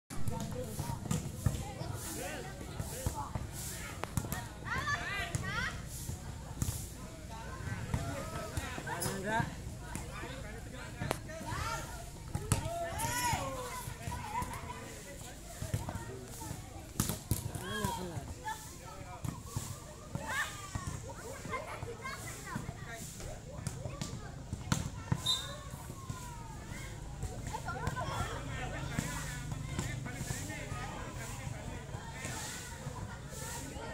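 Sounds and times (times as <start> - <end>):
people calling and shouting: 0.1 - 33.9
voices of players: 0.1 - 33.9.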